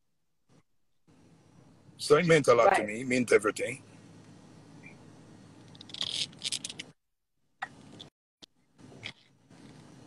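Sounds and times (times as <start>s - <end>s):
audio feed hiss: 1.1s - 5.7s.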